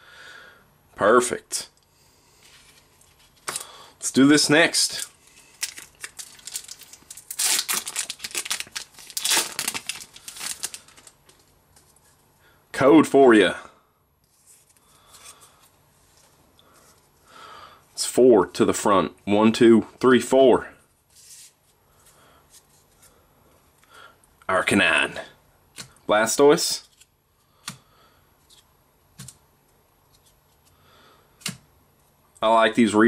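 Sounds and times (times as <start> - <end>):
trading cards rustling: 5.0 - 12.2
foil wrapper tearing and crinkling: 5.3 - 11.4.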